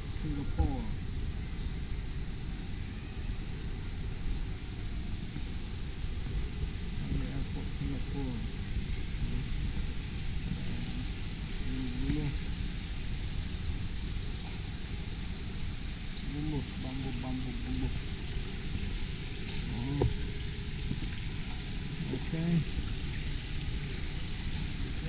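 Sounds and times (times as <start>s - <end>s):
faint voices talking: 0.0s - 1.0s, 6.9s - 12.5s, 16.1s - 22.8s
hiss and low rumble: 0.0s - 25.0s.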